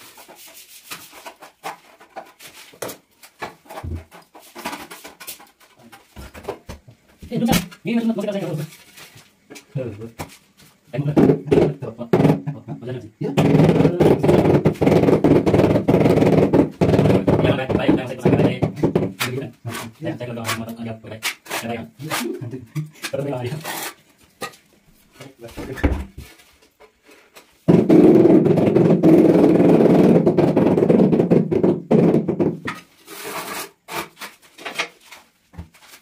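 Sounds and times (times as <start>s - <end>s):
trowel scraping mortar on concrete: 21.2s - 22.4s, 23.0s - 24.6s, 32.8s - 34.7s.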